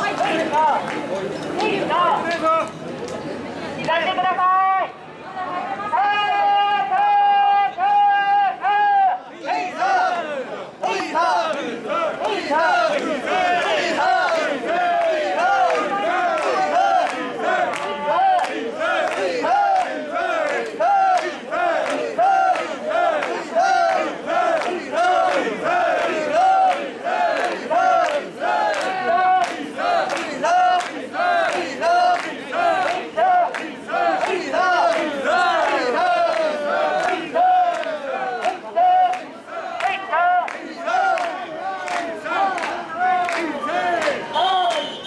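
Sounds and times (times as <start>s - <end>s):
people shouting rhythmic chant: 5.9s - 45.0s.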